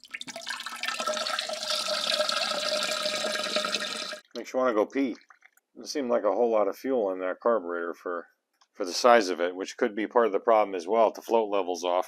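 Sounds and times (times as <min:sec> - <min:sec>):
fuel trickling into a mug: 0:00.0 - 0:04.2.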